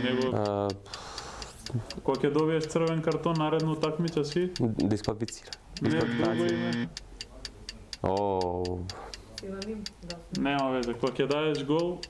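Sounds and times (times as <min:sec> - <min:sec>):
stopwatch ticking: 0:00.0 - 0:12.0.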